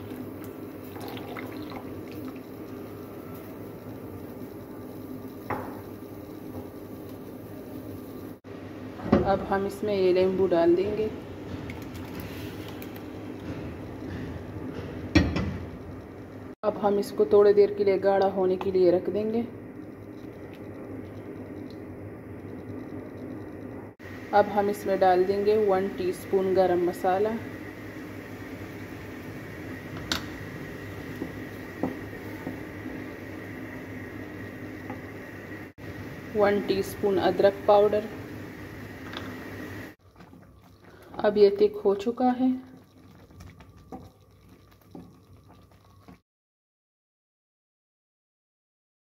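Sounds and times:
syrup bubbling: 0.0s - 8.4s, 19.7s - 23.7s, 27.6s - 46.2s
gas stove hiss: 0.0s - 8.9s, 24.0s - 40.0s
low hum: 17.5s - 40.2s.

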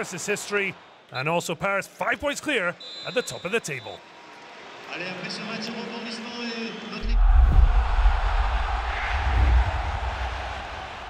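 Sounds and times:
deep bass boom: 7.0s - 10.3s
rushing whoosh: 7.0s - 11.0s.

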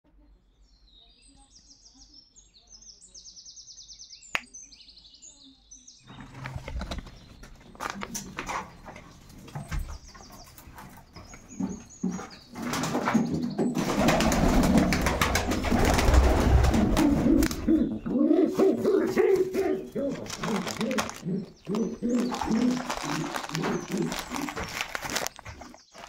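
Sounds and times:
small birds chirping: 0.1s - 26.0s
plastic bag crinkling: 6.1s - 9.7s, 18.6s - 26.0s.

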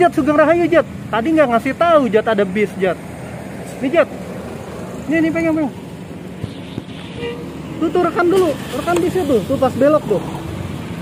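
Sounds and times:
road traffic passing: 0.0s - 11.0s.

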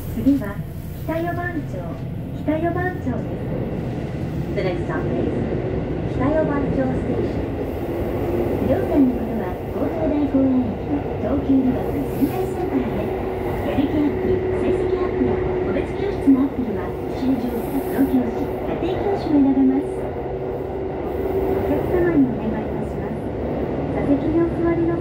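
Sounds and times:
rumble of train wheels on rail: 0.0s - 25.0s.

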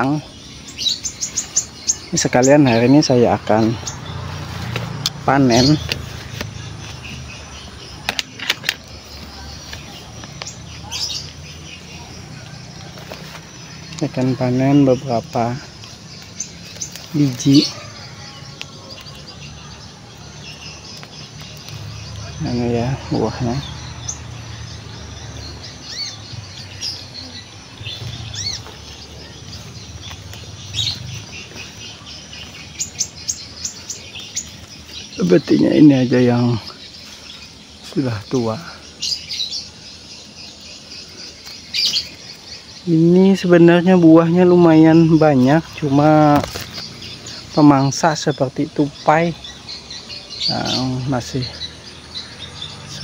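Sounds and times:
shrubs rustling: 0.0s - 53.0s
small birds chirping: 0.0s - 53.0s.

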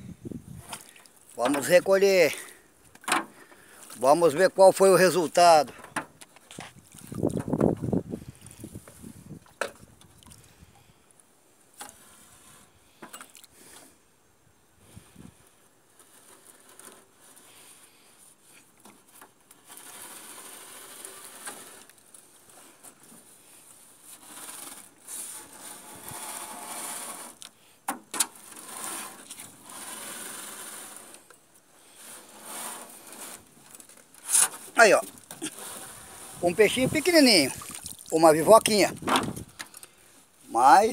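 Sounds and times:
net scraping against boat hull: 0.5s - 10.6s, 11.7s - 14.0s, 14.8s - 40.9s.

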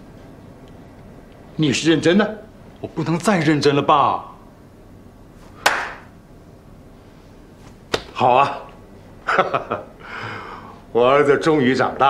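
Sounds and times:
hand patting shoulder: 5.6s - 6.1s, 7.6s - 8.2s.

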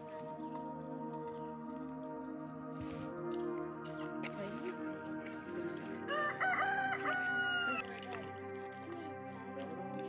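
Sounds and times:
background music: 0.0s - 10.0s
rooster crowing: 6.1s - 7.8s.

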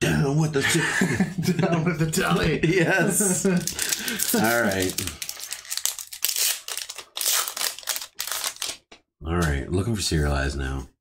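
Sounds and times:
foil wrapper crinkling: 3.4s - 8.9s.

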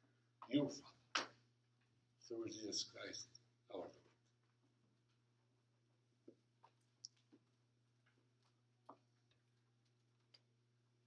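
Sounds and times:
faint clicks and taps: 6.2s - 10.6s.

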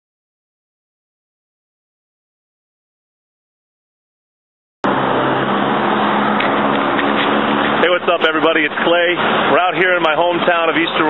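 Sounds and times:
road noise: 4.8s - 11.0s
vehicle engine hum: 4.8s - 11.0s.

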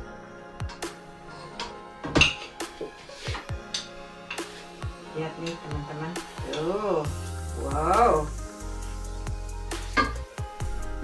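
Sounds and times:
background music: 0.0s - 11.0s
metal utensils clinking on pot: 0.7s - 2.7s, 3.3s - 6.9s.

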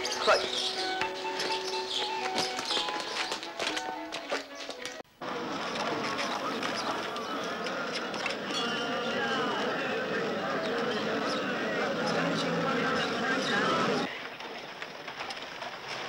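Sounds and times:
crowd voices talking and calling: 0.0s - 15.6s.

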